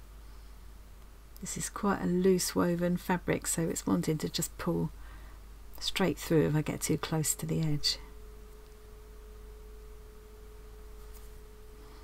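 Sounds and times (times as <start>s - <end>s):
faint steady tone: 0.0s - 12.0s
low background hum: 0.0s - 12.0s.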